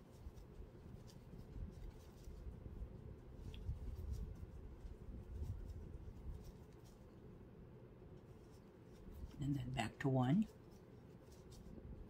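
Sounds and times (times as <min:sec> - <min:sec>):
yarn rustling: 0:00.0 - 0:07.4, 0:08.2 - 0:12.0.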